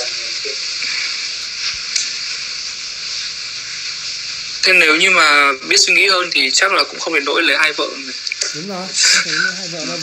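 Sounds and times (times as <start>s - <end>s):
high background hiss: 0.0s - 10.0s.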